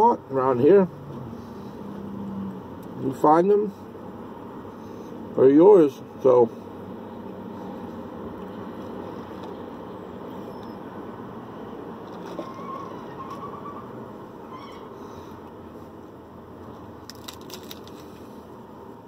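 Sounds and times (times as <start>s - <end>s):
vehicle rumble inside truck cab: 0.0s - 19.0s
crackling clicks of food eating: 17.0s - 18.3s.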